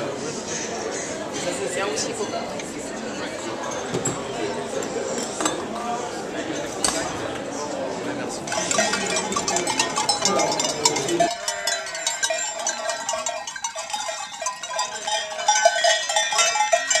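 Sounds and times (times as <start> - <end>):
voices: 0.0 - 17.0
sheep bells clanking: 8.4 - 17.0
clinking: 8.5 - 17.0.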